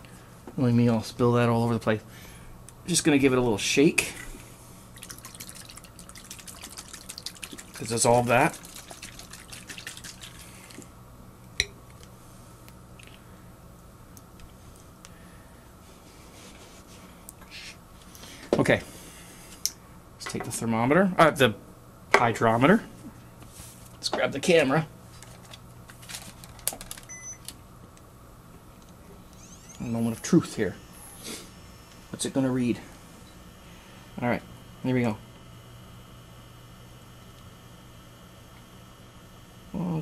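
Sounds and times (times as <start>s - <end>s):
low steady hum: 0.0s - 40.0s
camcorder being handled: 25.2s - 27.6s
faint electronic beep: 27.1s - 27.4s.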